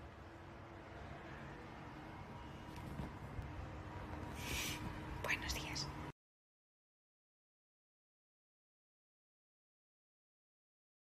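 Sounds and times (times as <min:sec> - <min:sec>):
woman whispering: 0:05.2 - 0:06.0.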